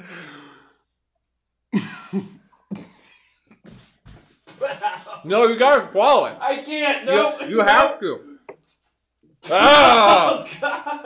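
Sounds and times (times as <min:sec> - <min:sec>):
man coughing and gagging: 0:01.8 - 0:03.1.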